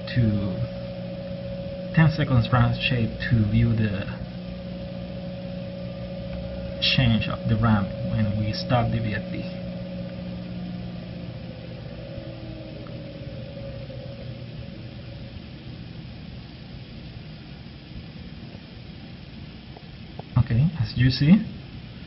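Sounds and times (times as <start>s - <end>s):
electric motor hum and whine: 0.0s - 22.0s
steady hiss: 0.0s - 22.0s.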